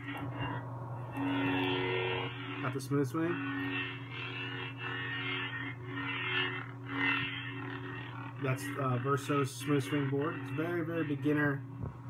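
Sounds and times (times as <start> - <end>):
lightsaber electric hum: 0.0 - 12.0.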